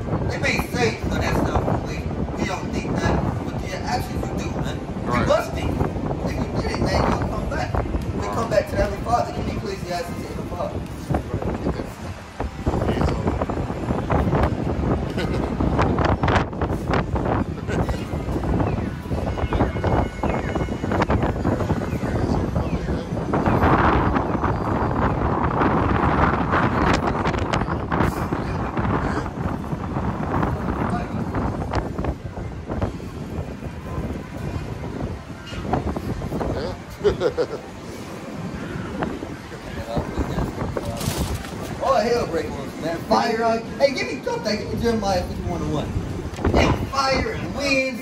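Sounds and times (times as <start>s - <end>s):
street noise: 0.0s - 48.0s
wind buffeting microphone: 0.0s - 48.0s.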